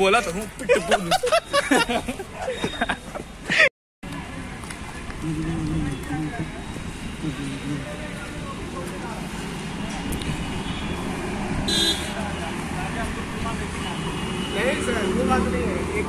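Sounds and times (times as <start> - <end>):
road traffic noise: 0.0 - 16.0
high horn beep: 10.5 - 11.1, 11.7 - 12.2.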